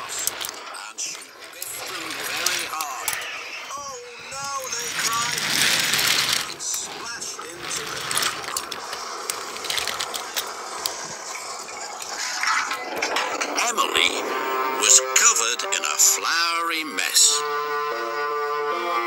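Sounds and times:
toy trains clicking and rattling: 0:00.0 - 0:17.4
voice-like gliding sounds: 0:00.0 - 0:17.6
rushing noise: 0:00.0 - 0:18.2.

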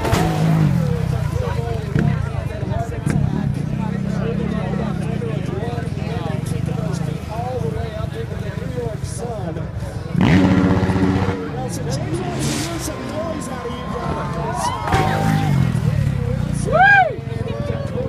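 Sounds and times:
motorcycle engine revving: 0:00.0 - 0:09.2, 0:10.0 - 0:18.0
crowd chatter: 0:00.0 - 0:18.0
rising and falling whoop: 0:12.8 - 0:15.7, 0:16.6 - 0:18.0.

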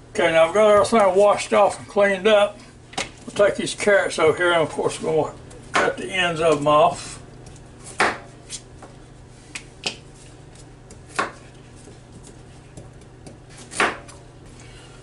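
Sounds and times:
knife chopping carrots on board: 0:10.8 - 0:14.2.

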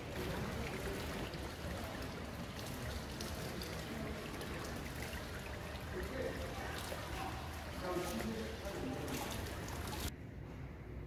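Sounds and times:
fountain water trickling and splashing: 0:00.0 - 0:10.1.

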